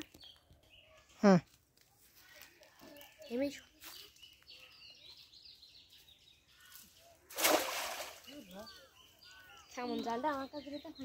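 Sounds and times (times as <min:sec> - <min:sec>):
birds chirping: 0:00.0 - 0:11.0
cast net splashing into water: 0:07.3 - 0:08.6.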